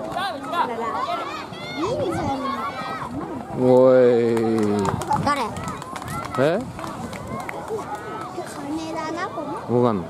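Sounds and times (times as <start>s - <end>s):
voices shouting and calling: 0.0s - 10.0s.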